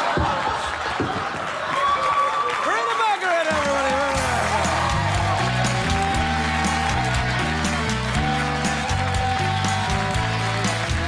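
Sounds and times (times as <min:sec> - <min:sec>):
audience cheering and whooping: 0:00.0 - 0:11.0.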